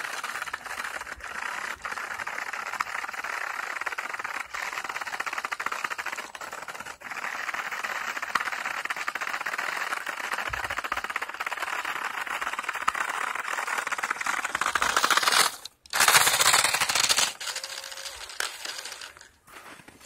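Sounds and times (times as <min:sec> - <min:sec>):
remote-control car rattling whir: 0:00.0 - 0:20.0.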